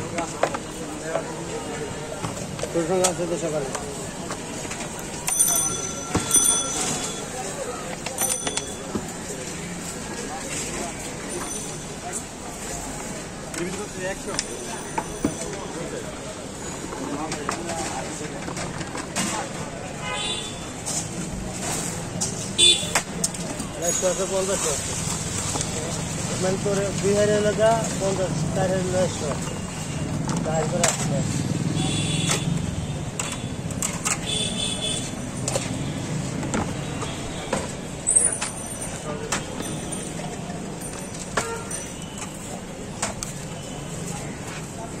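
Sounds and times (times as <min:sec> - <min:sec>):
passing traffic: 0:00.0 - 0:45.0
people's voices: 0:00.0 - 0:45.0.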